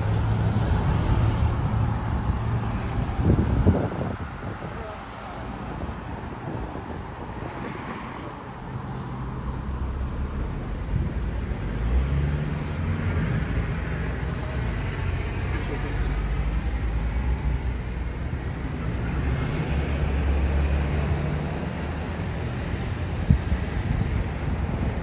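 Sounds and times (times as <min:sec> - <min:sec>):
traffic rumble: 0:00.0 - 0:25.0
wind buffeting microphone: 0:00.1 - 0:11.8, 0:21.8 - 0:25.0
faint voices: 0:04.5 - 0:06.6.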